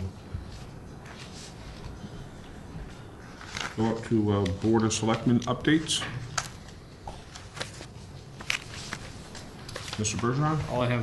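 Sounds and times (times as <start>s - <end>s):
faint handling noises: 0.0s - 11.0s.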